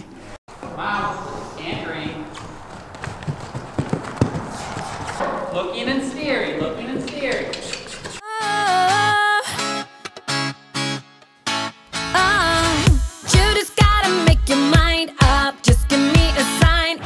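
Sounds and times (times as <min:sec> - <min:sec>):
horse hoofbeats on dirt: 0:01.7 - 0:05.2.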